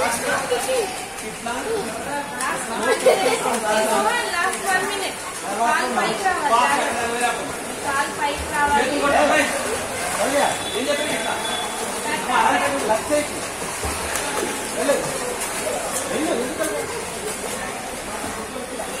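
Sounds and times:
children's voices and calls: 0.0 - 6.9
water splashing: 0.0 - 19.0.

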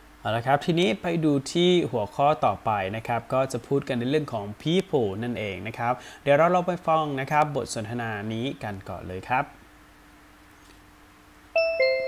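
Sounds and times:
faint steady hum: 0.0 - 12.0
two-note descending chime: 11.6 - 12.0.

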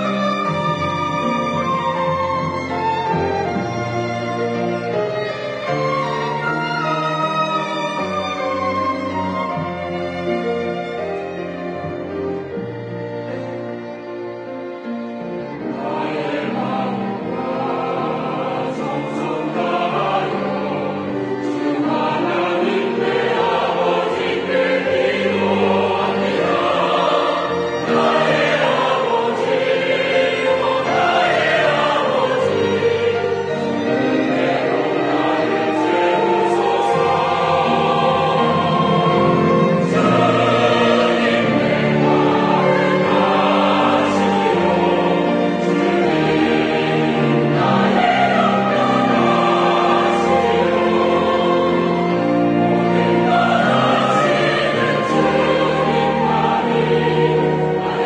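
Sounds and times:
choir singing in parts: 0.0 - 13.4, 15.2 - 58.0
piano accompaniment: 0.0 - 58.0.

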